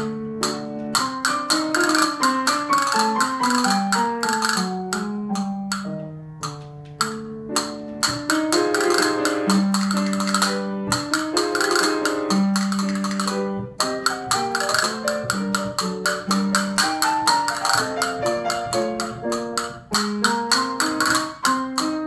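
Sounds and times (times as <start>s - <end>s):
melodic instrumental accompaniment: 0.0s - 22.0s
castanets clicking rolls: 0.4s - 22.0s.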